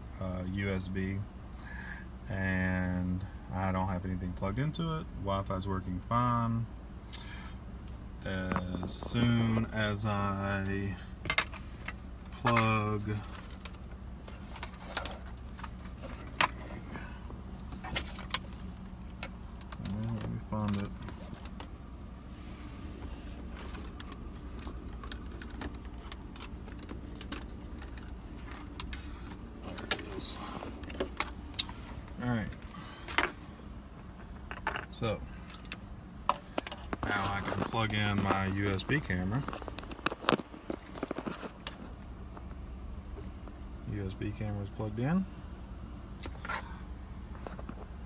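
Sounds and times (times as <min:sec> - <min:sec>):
car low hum: 0:00.0 - 0:48.0
hands rummaging through cables: 0:11.2 - 0:21.8, 0:22.9 - 0:42.0.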